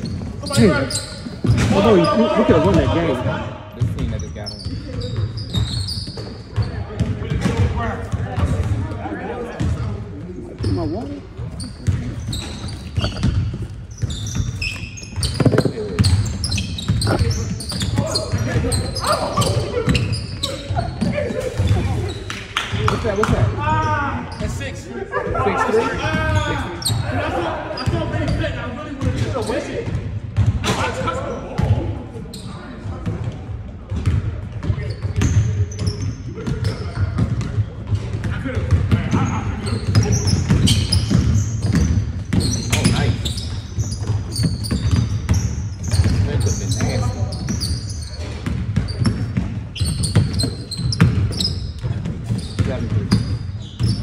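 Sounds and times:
players' voices echoing: 0:00.0 - 0:14.5, 0:15.3 - 0:54.0
basketball bouncing on hardwood: 0:15.2 - 0:17.3, 0:48.4 - 0:54.0.

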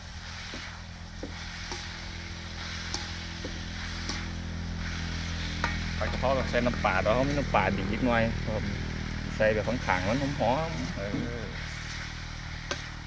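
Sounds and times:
food sizzling in a wok: 0:00.0 - 0:13.0
steady low hum: 0:00.0 - 0:13.0
metal spatula scraping a pan: 0:00.2 - 0:07.6, 0:09.7 - 0:13.0.

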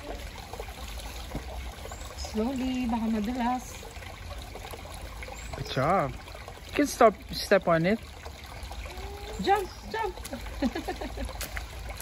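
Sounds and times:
stream trickling over stones: 0:00.0 - 0:12.0.

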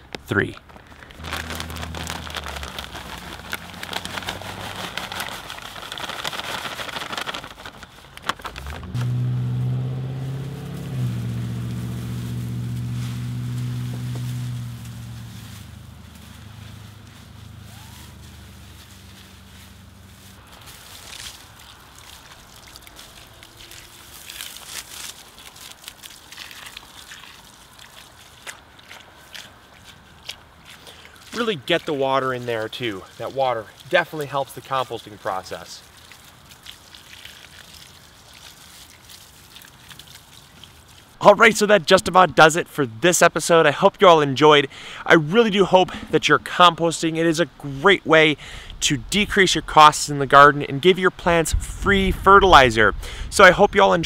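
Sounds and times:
hand rustling compost: 0:00.4 - 0:42.5
foil bag crinkling: 0:00.6 - 0:09.0, 0:10.8 - 0:29.4
coffee grounds pattering onto leaves: 0:00.7 - 0:30.0, 0:30.9 - 0:42.1
low engine hum: 0:01.2 - 0:05.7, 0:07.1 - 0:20.6.

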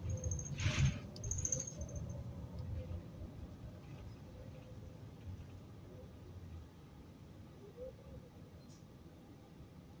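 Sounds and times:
bus drivetrain and road rumble: 0:00.0 - 0:10.0.

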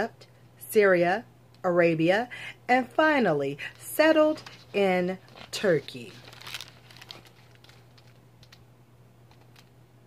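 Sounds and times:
low steady hum: 0:00.0 - 0:10.0
book pages rustling: 0:03.6 - 0:08.6.

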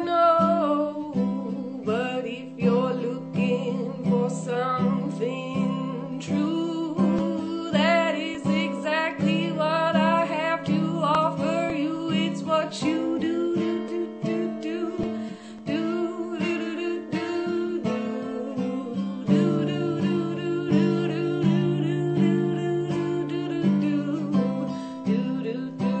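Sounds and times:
strummed acoustic guitar: 0:00.0 - 0:26.0
woman singing: 0:00.0 - 0:26.0.

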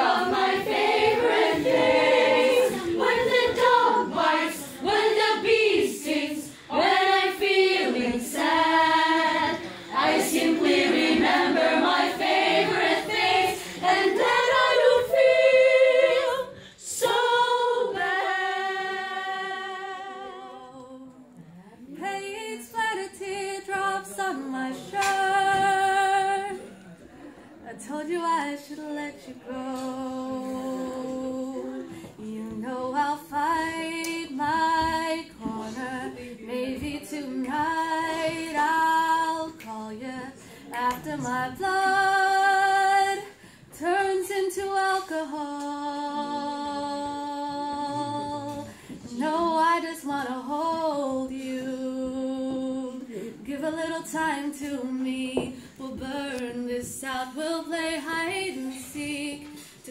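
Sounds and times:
children's choir singing: 0:00.0 - 0:21.2, 0:22.6 - 0:26.6, 0:29.2 - 0:59.9.

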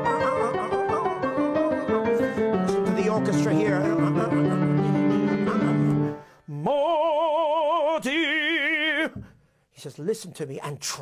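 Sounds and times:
grand piano chords: 0:00.0 - 0:06.3
operatic singing voice: 0:00.0 - 0:09.3.

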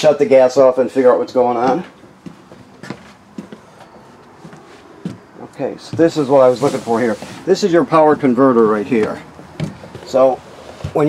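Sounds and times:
soft footsteps: 0:01.6 - 0:11.0.

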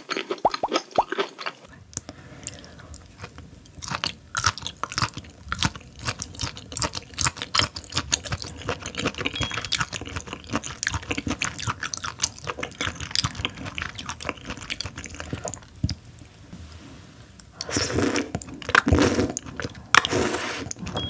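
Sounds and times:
person chewing wetly: 0:00.0 - 0:16.2, 0:17.4 - 0:21.0.

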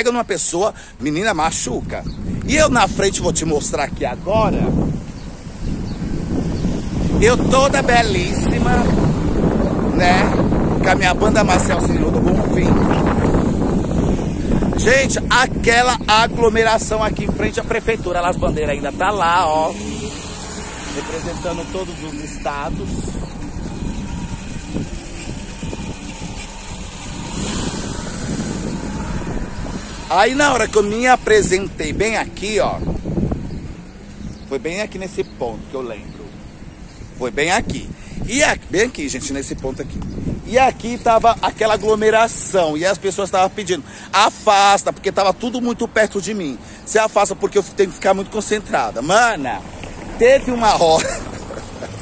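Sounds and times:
wind buffeting microphone: 0:00.0 - 0:43.6
vehicle engine rumbling: 0:00.0 - 0:52.0.

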